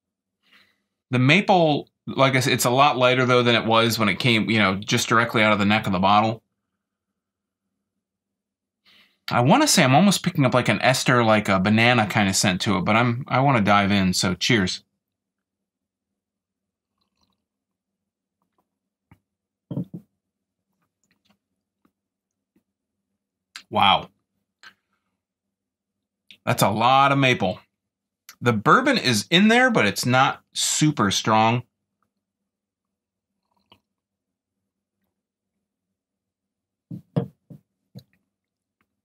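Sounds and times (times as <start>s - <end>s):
person sipping and swallowing: 16.9s - 17.4s, 33.4s - 33.9s.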